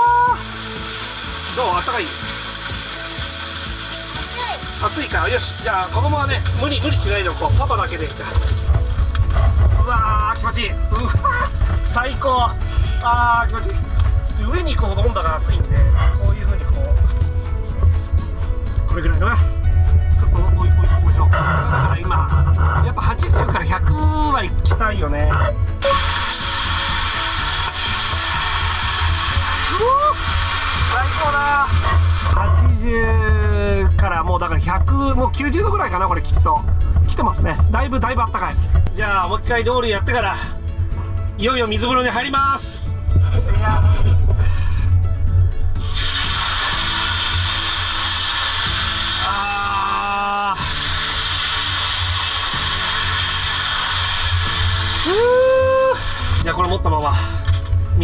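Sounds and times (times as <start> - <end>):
water hissing into steam: 0.0 - 9.0, 25.7 - 32.7, 45.8 - 56.6
background music: 0.0 - 58.0
rising pitched tone: 15.4 - 34.0, 54.4 - 56.4.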